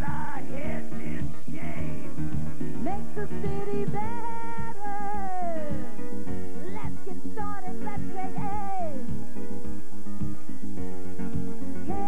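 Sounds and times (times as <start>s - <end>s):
live pop band music: 0.0s - 12.0s.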